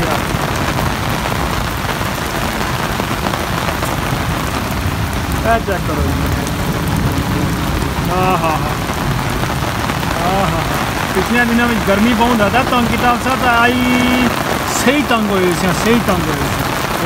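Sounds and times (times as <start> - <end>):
heavy rain pattering on ground: 0.0 - 17.0
rain drumming on metal roof: 0.0 - 17.0
short pitched voice-like sounds: 8.1 - 8.8.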